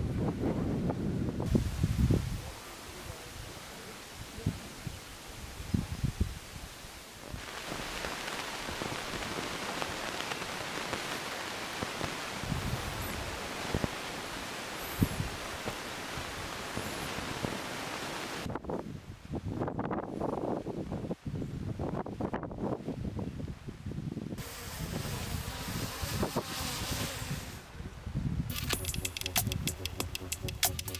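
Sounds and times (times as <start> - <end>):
wind gusts on microphone: 0.0 - 28.7
steady rustling hiss: 1.4 - 18.5
sharp cracks: 28.5 - 30.9.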